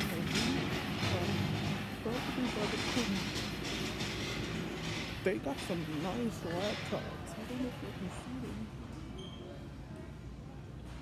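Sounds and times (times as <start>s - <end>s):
faint voices of shoppers: 0.0s - 11.0s
rumbling store background noise: 0.0s - 11.0s.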